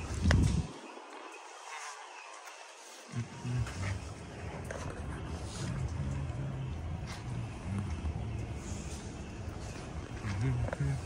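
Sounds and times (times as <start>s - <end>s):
diesel engine idling: 3.1s - 11.0s.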